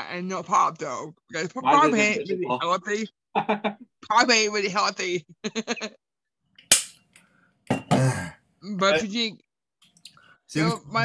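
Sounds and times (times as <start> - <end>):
sharp pop: 6.7 - 7.0.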